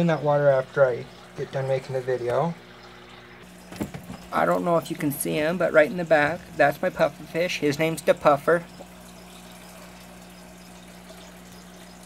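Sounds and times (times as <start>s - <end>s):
water trickling and bubbling: 0.0s - 12.0s.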